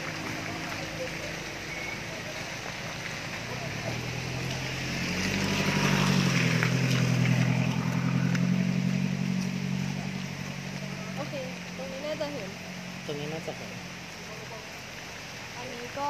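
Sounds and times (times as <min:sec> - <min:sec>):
vehicle engine passing by: 0:00.0 - 0:16.0.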